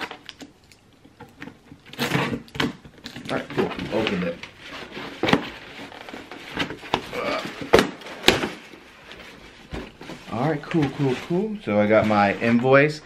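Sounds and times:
cardboard scraping and rustling: 0:01.8 - 0:12.9.

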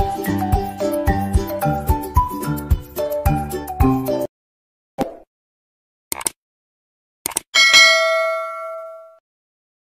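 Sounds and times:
bell-like notification ding: 0:07.6 - 0:09.2.

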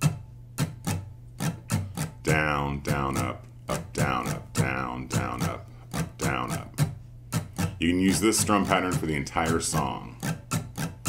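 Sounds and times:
muted acoustic guitar strumming: 0:00.0 - 0:11.0.

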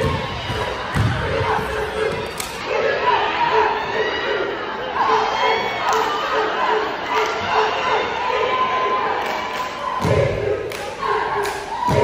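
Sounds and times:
crowd noise echoing: 0:00.0 - 0:12.0.

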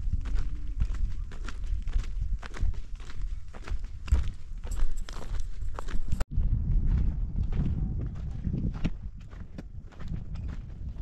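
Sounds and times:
footsteps on stony dirt: 0:00.0 - 0:11.0
low rumble: 0:05.8 - 0:11.0.

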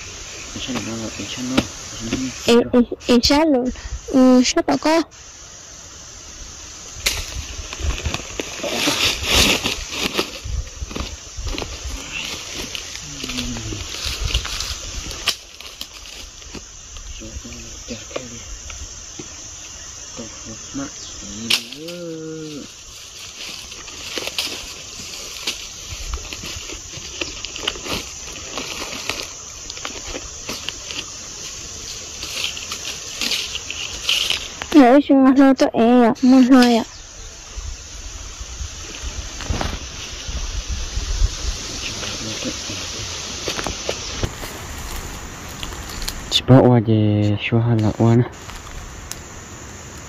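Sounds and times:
dry leaves rustling and crackling: 0:07.0 - 0:18.4, 0:21.3 - 0:35.5, 0:38.8 - 0:46.4, 0:48.0 - 0:49.5
person murmuring: 0:13.0 - 0:13.9, 0:21.2 - 0:22.7
sharp snap: 0:21.4 - 0:22.0.

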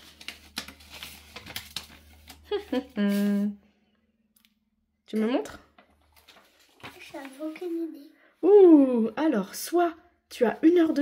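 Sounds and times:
paper crinkling and rustling: 0:00.0 - 0:03.4, 0:05.8 - 0:07.8.

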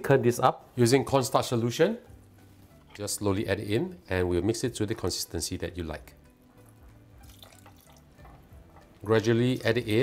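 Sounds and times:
faint liquid trickling and dripping: 0:06.6 - 0:09.1.

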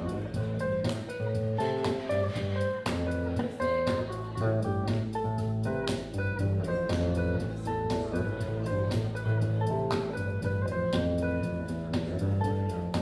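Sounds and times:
bass guitar line: 0:00.0 - 0:13.0
electric guitar strumming: 0:00.0 - 0:13.0.

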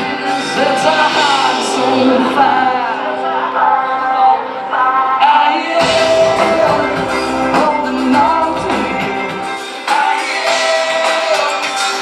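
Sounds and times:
live band playing: 0:00.0 - 0:12.0
person singing: 0:00.0 - 0:12.0.

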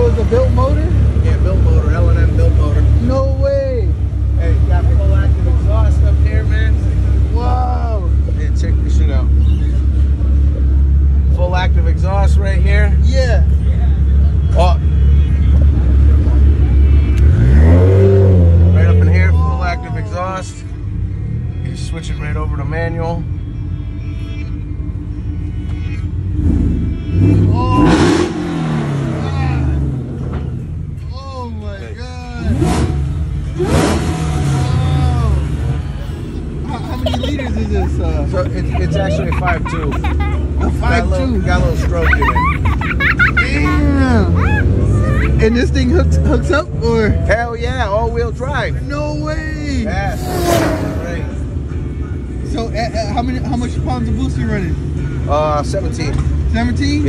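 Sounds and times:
pickup truck engine idling and revving: 0:00.0 - 0:57.0.

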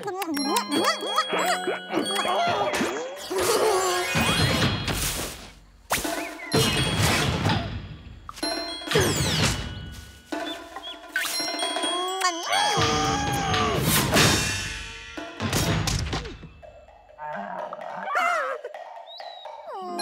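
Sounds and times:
cartoon music: 0:00.0 - 0:04.7, 0:10.3 - 0:14.3, 0:17.2 - 0:20.0
bell-like dings: 0:06.5 - 0:13.6.

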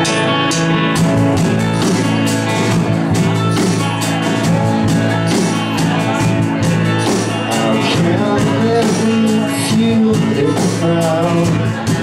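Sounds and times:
electric guitar: 0:00.0 - 0:12.0
live rock band playing: 0:00.0 - 0:12.0
steady drum beat: 0:00.0 - 0:12.0.

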